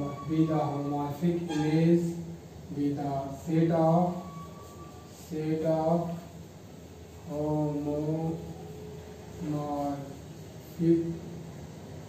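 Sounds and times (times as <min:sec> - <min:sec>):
man speaking in drawn out syllables: 0:00.0 - 0:04.4, 0:07.3 - 0:08.6, 0:09.4 - 0:11.4.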